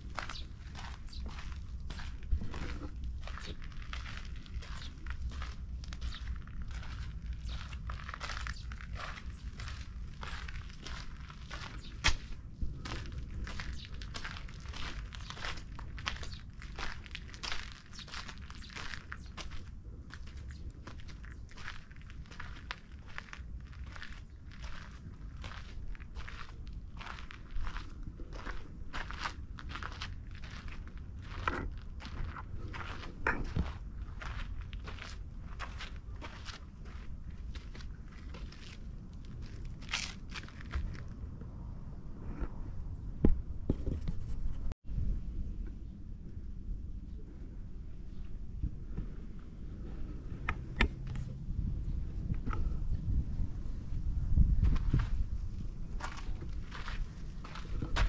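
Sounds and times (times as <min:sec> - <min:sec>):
footsteps crunching on gravel: 0:00.0 - 0:41.1, 0:54.6 - 0:58.0
low rumble: 0:00.0 - 0:43.7, 0:44.6 - 0:58.0.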